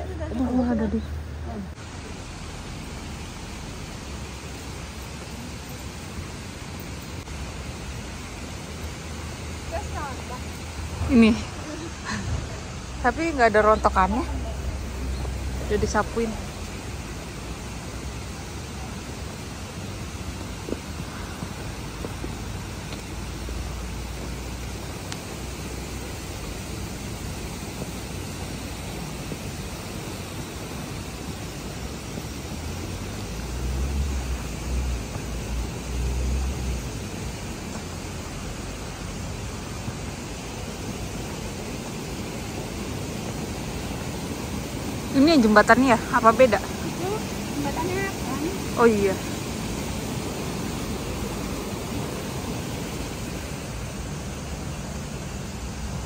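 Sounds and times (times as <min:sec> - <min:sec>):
outdoor hiss: 0:00.0 - 0:56.0.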